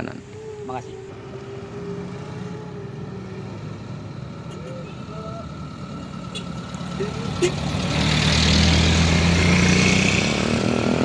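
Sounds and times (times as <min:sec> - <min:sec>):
vehicle engine running at low revs: 0:00.3 - 0:11.0.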